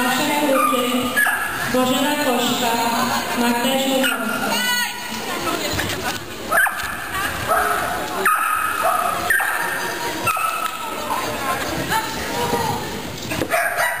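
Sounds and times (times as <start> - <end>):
dog barking: 0.5 - 1.6, 6.5 - 10.7, 13.5 - 14.0.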